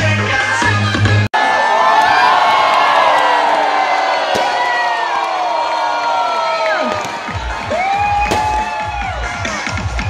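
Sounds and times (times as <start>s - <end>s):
large crowd cheering and screaming: 0.3s - 10.0s.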